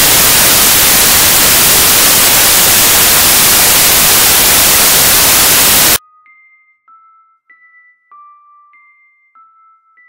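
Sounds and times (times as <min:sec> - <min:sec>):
radio static hiss: 0:00.0 - 0:06.0
radio transmission speech: 0:00.0 - 0:06.0.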